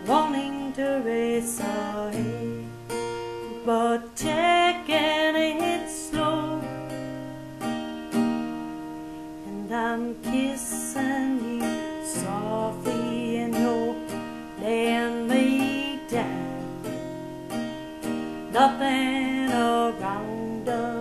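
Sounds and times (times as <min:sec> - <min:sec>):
woman singing a country ballad: 0:00.0 - 0:07.7, 0:09.4 - 0:21.0
strummed acoustic guitar: 0:00.0 - 0:21.0.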